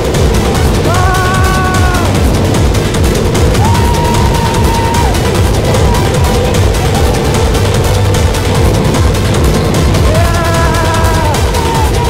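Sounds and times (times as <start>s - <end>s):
roller coaster wheels rattling: 0.0s - 12.0s
wind rush on microphone: 0.0s - 12.0s.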